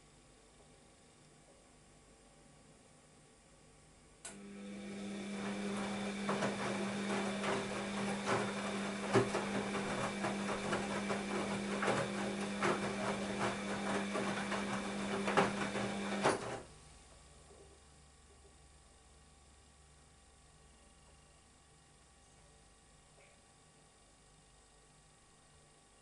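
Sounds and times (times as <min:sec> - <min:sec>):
washing machine motor hum: 0:04.2 - 0:17.5
wet laundry tumbling knocks: 0:05.4 - 0:16.6.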